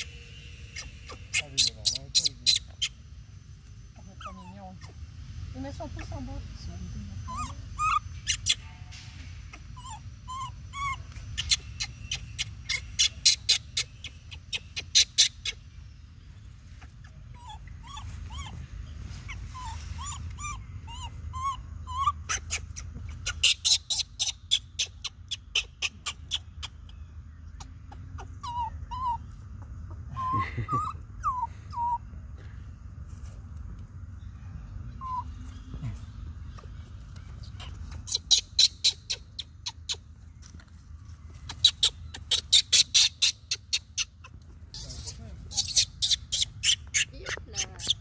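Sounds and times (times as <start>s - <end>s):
baby monkey whimpering cries: 0.7s - 3.0s, 4.0s - 5.1s, 7.1s - 8.7s, 9.4s - 15.6s, 16.7s - 32.0s, 34.9s - 35.6s, 37.5s - 40.0s, 41.5s - 48.0s.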